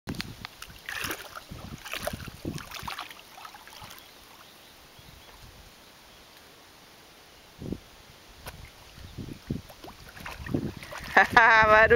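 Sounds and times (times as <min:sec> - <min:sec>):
dog paddling in water: 0:00.6 - 0:04.5, 0:09.6 - 0:11.8
dog splashing through water: 0:00.8 - 0:04.0, 0:09.8 - 0:11.4.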